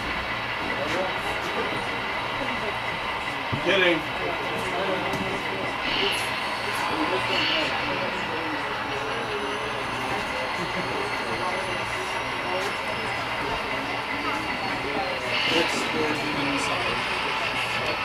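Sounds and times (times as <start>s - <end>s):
steady rumble: 0.0s - 14.6s
people chattering: 0.0s - 18.0s.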